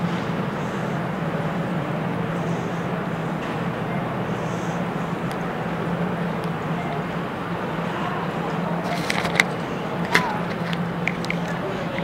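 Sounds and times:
store hum and rushing noise: 0.0s - 12.0s.

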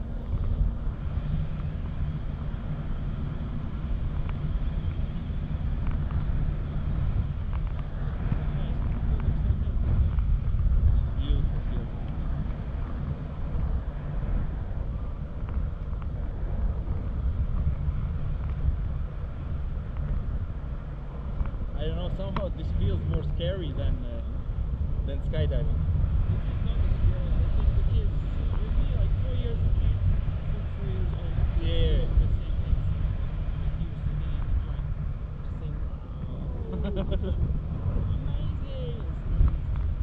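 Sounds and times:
wind buffeting microphone: 0.0s - 40.0s.

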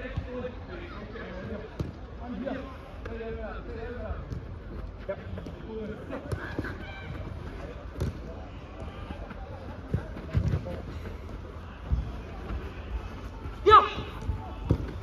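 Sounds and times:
footballers calling out: 0.0s - 15.0s
ball kicked thuds: 8.0s - 8.2s.

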